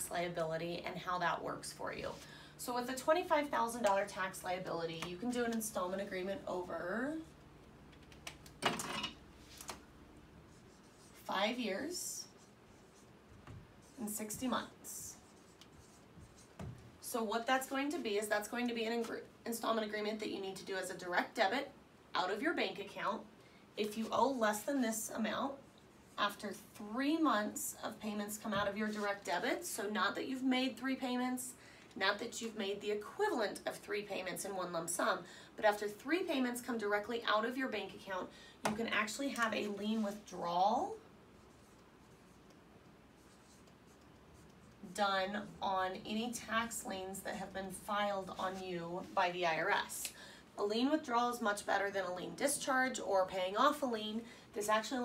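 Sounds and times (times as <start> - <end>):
marker writing on whiteboard: 10.5 - 17.0, 38.7 - 42.6, 43.2 - 49.9.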